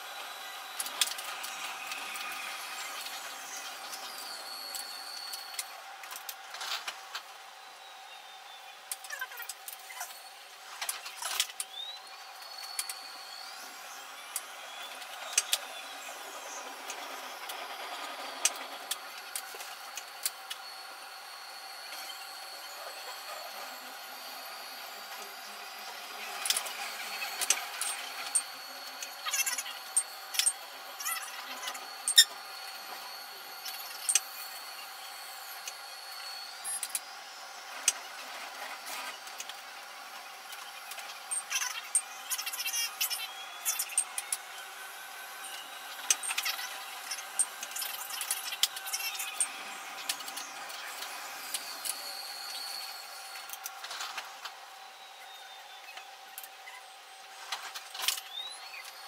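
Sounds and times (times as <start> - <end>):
train high whine: 0.0 - 59.0
wheels clicking and rattling on track: 14.7 - 20.7.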